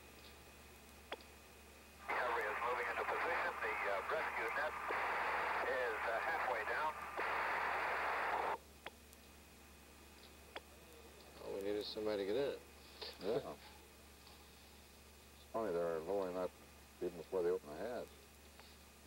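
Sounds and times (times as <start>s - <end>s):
low hiss: 0.0s - 19.0s
voice over hissy radio: 2.1s - 8.6s.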